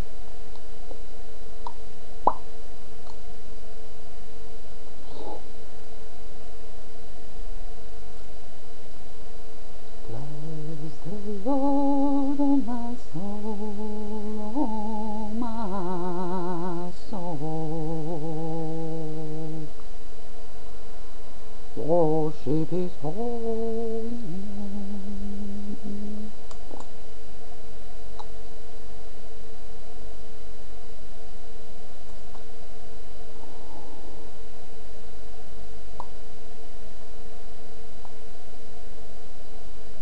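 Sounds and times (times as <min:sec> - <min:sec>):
faint steady tone: 0:00.0 - 0:40.0
low background rumble: 0:00.0 - 0:40.0
low hum: 0:00.0 - 0:40.0
woman humming low note: 0:10.0 - 0:19.8, 0:21.8 - 0:26.6.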